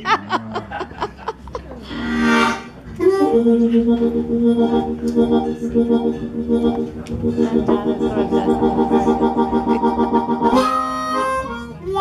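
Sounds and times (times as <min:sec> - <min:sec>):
harmonica held chord: 0:02.1 - 0:12.0.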